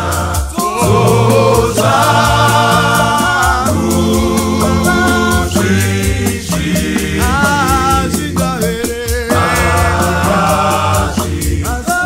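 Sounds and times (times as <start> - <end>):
vocal group singing in harmony: 0.0 - 12.0
ticking beat: 0.2 - 12.0.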